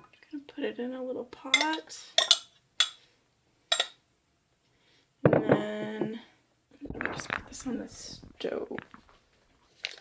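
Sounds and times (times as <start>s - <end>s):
kitchen utensil clink: 1.5s - 3.0s, 3.7s - 4.0s.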